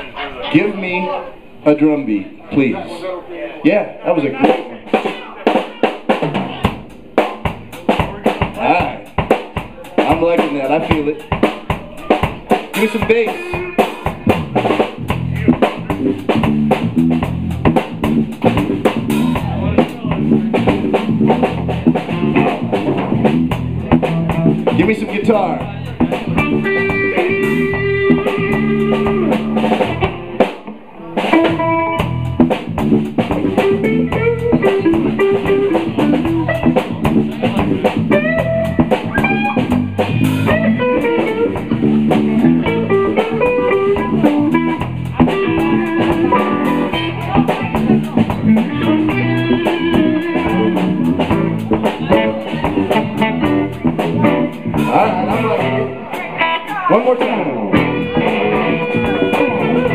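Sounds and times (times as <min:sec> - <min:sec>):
blues band jamming: 0:03.8 - 0:59.9.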